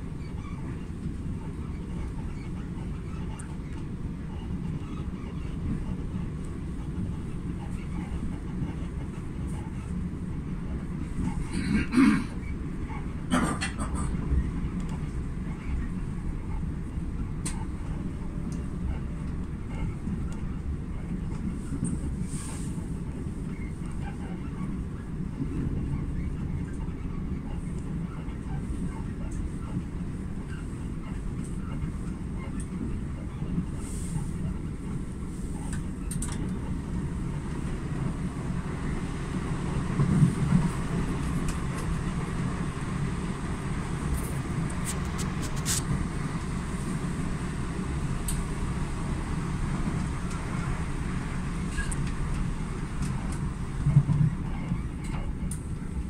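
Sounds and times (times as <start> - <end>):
train wheels rumbling: 0.0 - 56.0.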